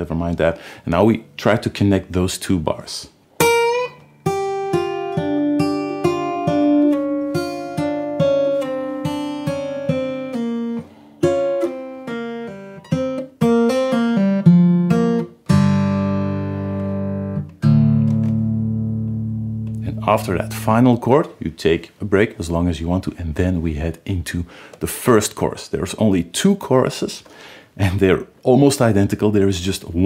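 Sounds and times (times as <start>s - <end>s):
fingerpicked acoustic guitar blues: 3.4s - 20.8s.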